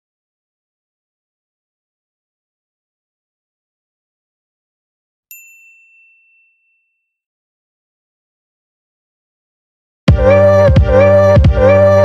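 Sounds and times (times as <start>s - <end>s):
bright bell-like ding: 5.3s - 7.2s.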